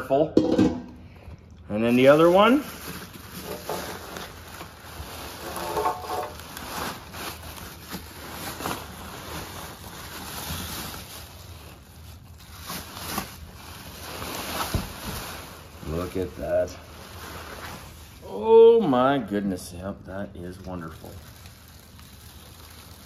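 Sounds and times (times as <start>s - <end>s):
packaging rustling and crinkling: 1.3s - 18.4s, 20.4s - 23.0s.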